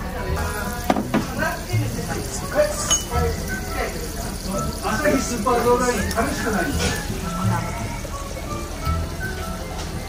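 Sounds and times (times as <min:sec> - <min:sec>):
background music: 0:00.0 - 0:10.0
utensils clinking on tableware: 0:02.8 - 0:03.3.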